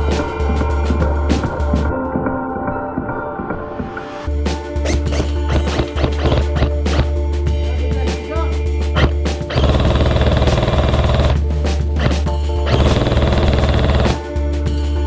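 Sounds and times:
background music: 0.0 - 15.0
airsoft gunfire rattle: 9.0 - 11.4, 12.7 - 14.2.

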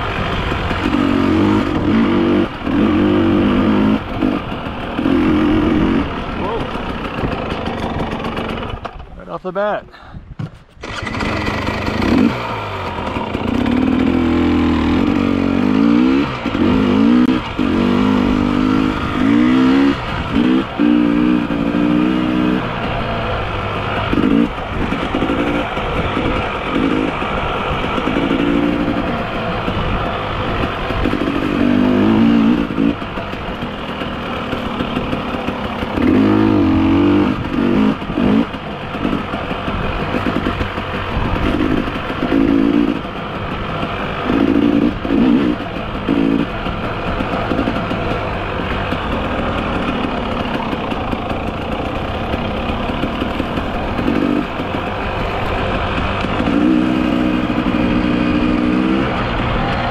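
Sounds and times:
off-road motorcycle engine revving: 0.0 - 59.9.

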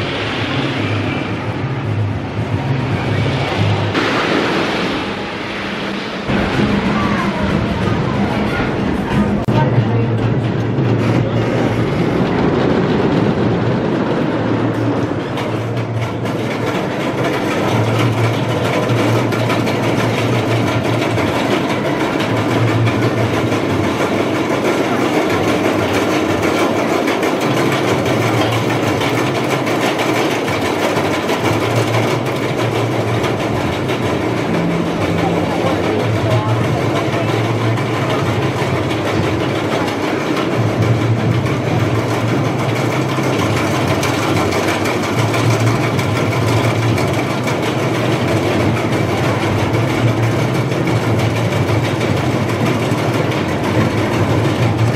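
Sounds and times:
low hum: 0.0 - 16.1, 32.2 - 42.4
roller coaster train rumbling: 0.0 - 54.9.

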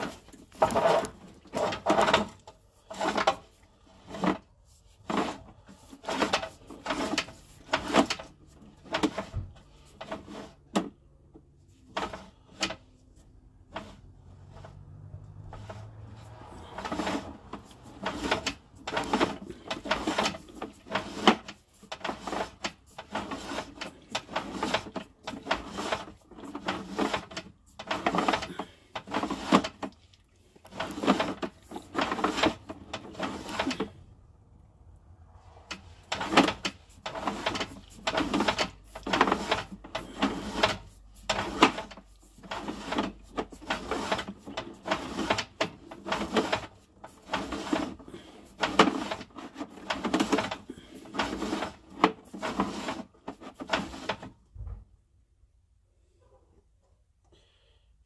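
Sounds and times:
cable rattling and scraping in drain: 0.0 - 34.0, 35.6 - 54.5.

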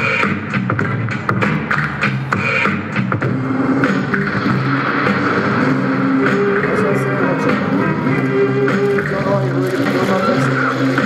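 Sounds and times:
man beatboxing: 0.0 - 11.0.

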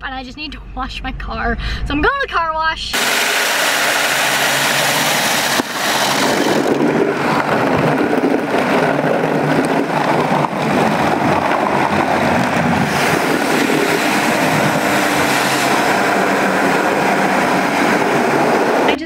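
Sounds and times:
car wash brushes and spray: 3.0 - 18.9.

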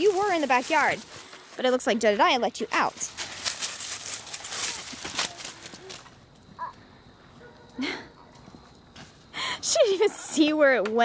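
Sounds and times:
dry leaves crackling underfoot: 0.0 - 6.8.

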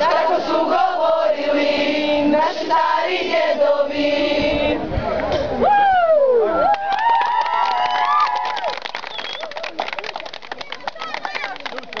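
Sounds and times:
girls whooping and cheering: 5.6 - 8.8
hand clapping: 8.3 - 12.0.

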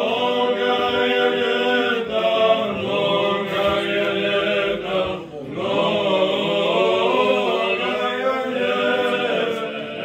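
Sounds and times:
men chanting a hymn: 0.0 - 10.0.

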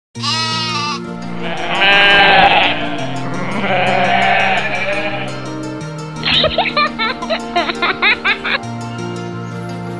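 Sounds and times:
goat bleating: 0.2 - 5.6.

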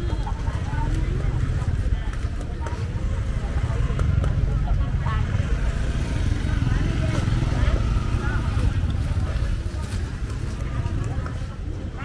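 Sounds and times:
motorbike traffic rumble: 0.0 - 12.0
voices of vendors and shoppers: 0.0 - 12.0.

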